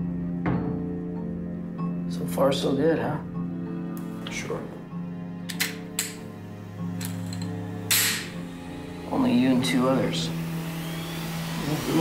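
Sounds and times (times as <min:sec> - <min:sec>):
low music drone: 0:00.0 - 0:12.0.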